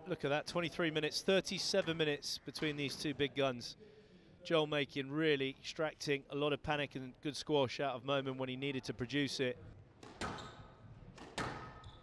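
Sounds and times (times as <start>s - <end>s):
squash ball smacks: 11.1s - 12.0s.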